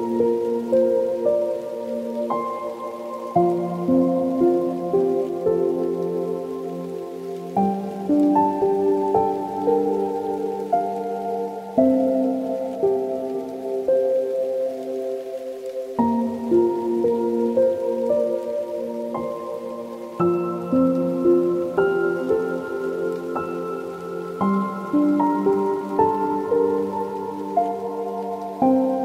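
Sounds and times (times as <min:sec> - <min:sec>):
slow soft piano music: 0:00.0 - 0:29.0.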